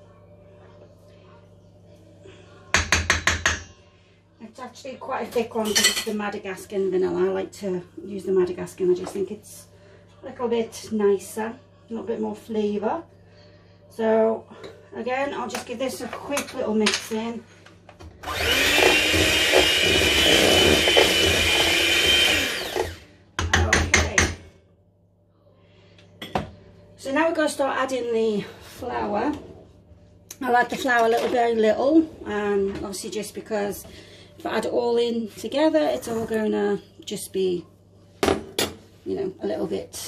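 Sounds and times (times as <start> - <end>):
electric hand mixer whining: 18.2 - 23.0.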